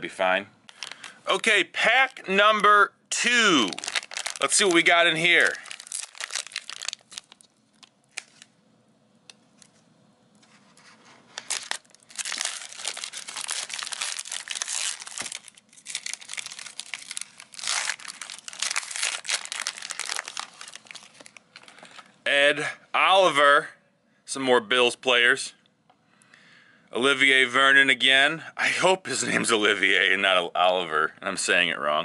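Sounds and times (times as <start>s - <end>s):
plastic wrapper crinkling and tearing: 0.7s - 2.3s, 3.6s - 8.6s, 10.4s - 22.2s.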